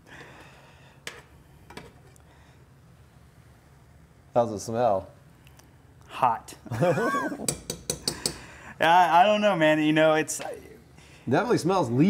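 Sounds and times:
man laughing: 0:06.7 - 0:07.5
man speaking: 0:08.8 - 0:12.0.

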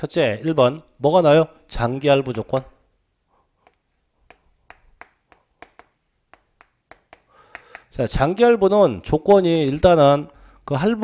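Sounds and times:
chalk tapping on a blackboard: 0:03.6 - 0:08.0.

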